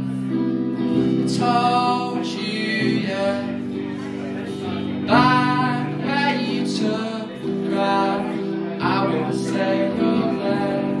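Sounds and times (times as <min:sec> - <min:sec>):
electric guitar chords: 0:00.0 - 0:11.0
man singing long notes: 0:01.1 - 0:11.0.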